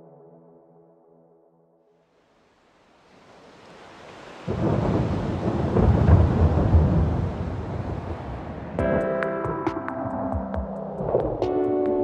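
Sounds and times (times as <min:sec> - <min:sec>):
rumbling thunder-like crash: 0:04.5 - 0:08.8.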